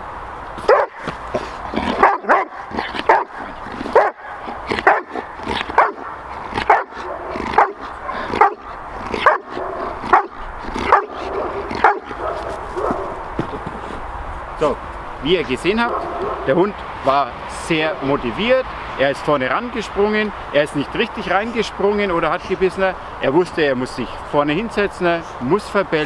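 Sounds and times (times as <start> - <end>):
dog barking: 0.6 - 13.2, 15.8 - 16.6.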